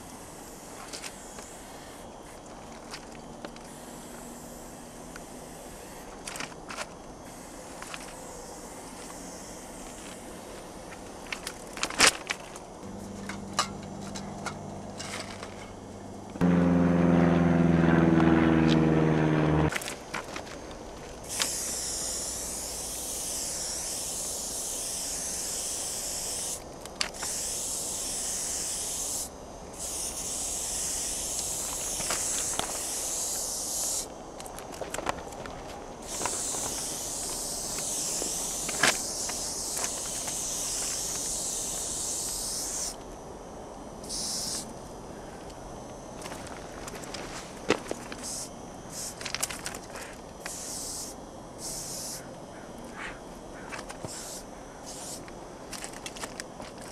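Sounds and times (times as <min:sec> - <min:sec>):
spray paint can hissing: 0:03.7 - 0:06.4, 0:21.2 - 0:26.6, 0:27.2 - 0:34.1, 0:36.0 - 0:43.0, 0:44.0 - 0:44.7, 0:48.2 - 0:49.2, 0:50.4 - 0:52.2, 0:54.0 - 0:55.2.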